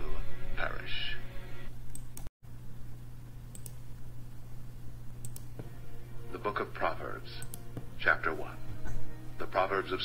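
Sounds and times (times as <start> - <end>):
low electrical hum: 0.0 - 10.0
computer mouse clicks: 1.9 - 2.3, 3.5 - 3.8, 5.2 - 5.6, 7.4 - 7.7.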